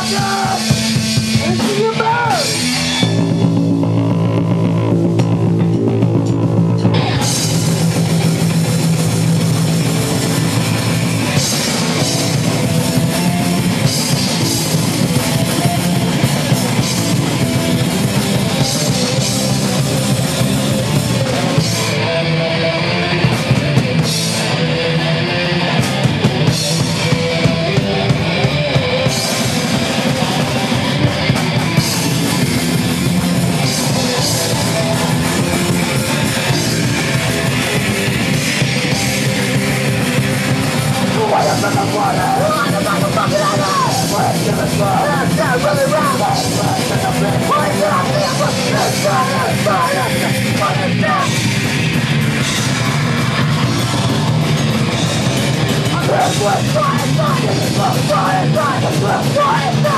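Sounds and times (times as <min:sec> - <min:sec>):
bass guitar: 0:00.0 - 0:59.9
distorted electric guitar: 0:00.0 - 0:59.9
drum kit and cymbals: 0:00.0 - 0:59.9.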